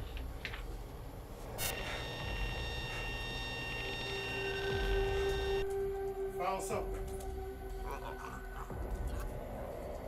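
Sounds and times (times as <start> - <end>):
high ringing tones: 1.6 - 5.7.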